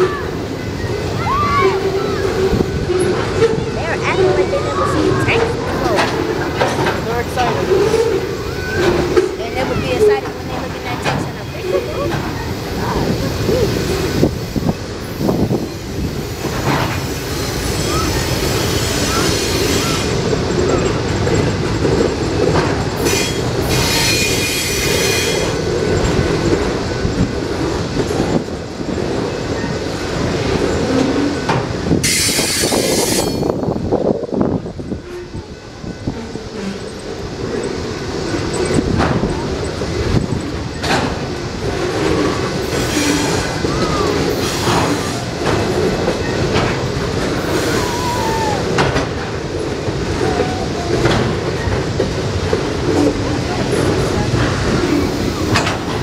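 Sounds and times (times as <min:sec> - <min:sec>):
train wheels rumbling on rails: 0:00.0 - 0:56.0
high wheel squeals: 0:14.4 - 0:21.1, 0:23.0 - 0:25.7, 0:30.8 - 0:33.6, 0:42.2 - 0:45.4, 0:47.4 - 0:48.8.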